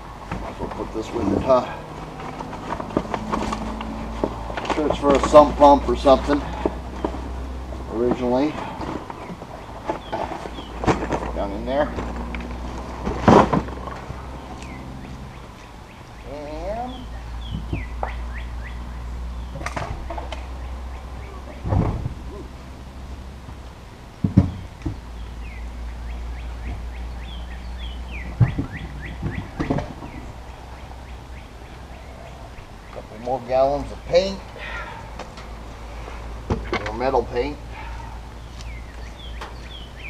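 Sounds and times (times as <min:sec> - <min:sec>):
low outdoor hum: 0:00.0 - 0:40.0
small birds chirping: 0:00.5 - 0:13.0, 0:13.6 - 0:40.0.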